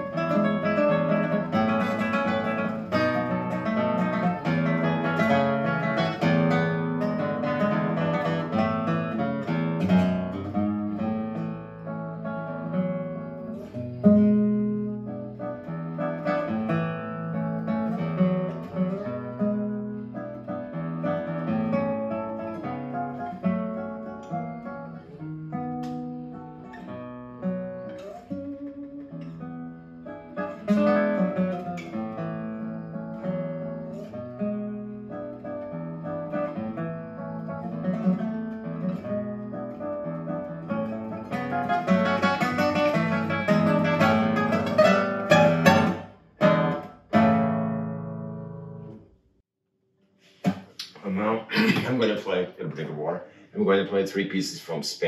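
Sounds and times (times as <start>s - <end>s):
classical guitar playing: 0.0s - 49.3s.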